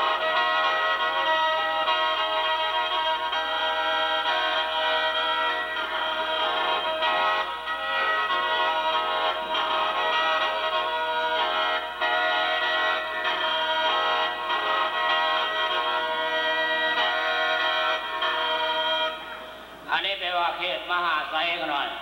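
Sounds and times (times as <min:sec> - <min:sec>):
mouth organ reedy melody: 0:00.0 - 0:22.0.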